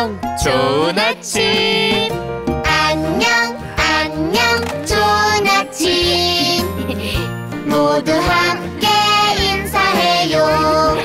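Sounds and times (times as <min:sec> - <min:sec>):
child singing: 0:00.0 - 0:06.8, 0:07.7 - 0:11.0
upbeat backing music: 0:00.0 - 0:11.0.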